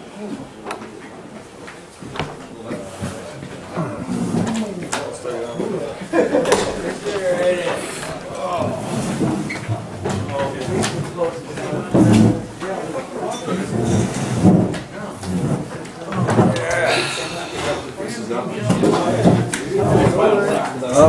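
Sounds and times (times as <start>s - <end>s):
people talking indistinctly: 0.1s - 21.0s.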